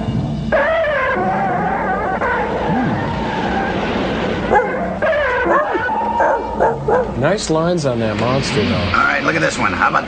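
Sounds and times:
steady rushing noise: 0.0s - 10.0s
monster cries: 0.5s - 3.9s.

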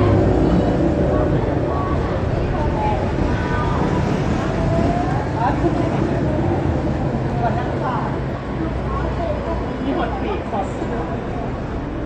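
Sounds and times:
people talking: 0.0s - 12.0s
vehicle engines rumbling: 0.0s - 12.0s.

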